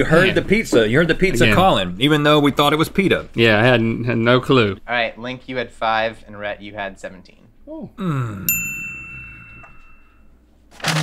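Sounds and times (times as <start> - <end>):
voice: 0.0 - 8.6
bell-like ding: 8.5 - 10.3.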